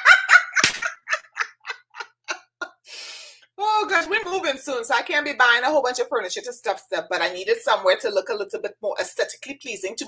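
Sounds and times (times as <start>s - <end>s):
woman laughing: 0.0s - 2.8s.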